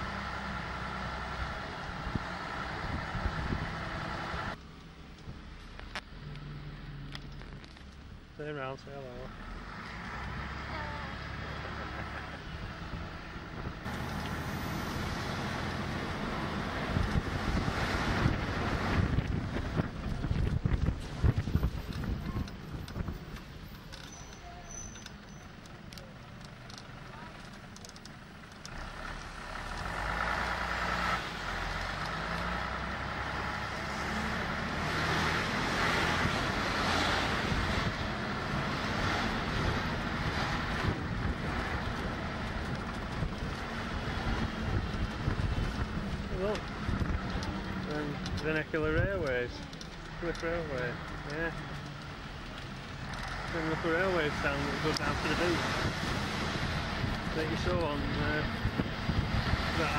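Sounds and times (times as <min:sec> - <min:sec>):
bus engine rumble: 0:00.0 - 0:59.9
wind buffeting microphone: 0:16.2 - 0:23.6, 0:35.8 - 0:49.6, 0:54.9 - 0:59.9.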